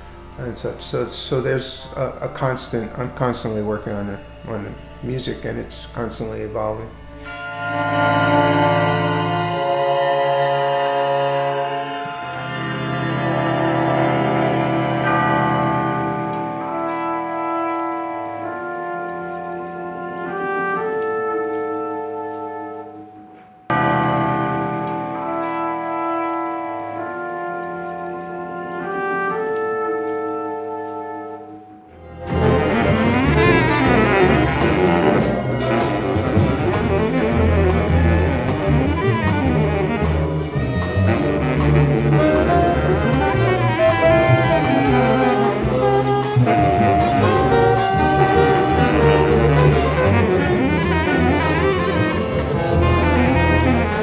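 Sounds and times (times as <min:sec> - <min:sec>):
full jazz band passage: 0:00.0 - 0:54.0
horns and winds sustained chords: 0:00.0 - 0:54.0.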